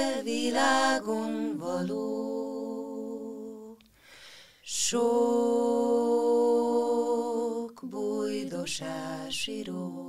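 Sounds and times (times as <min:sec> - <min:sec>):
women singing in harmony: 0:00.0 - 0:03.8, 0:04.7 - 0:10.0.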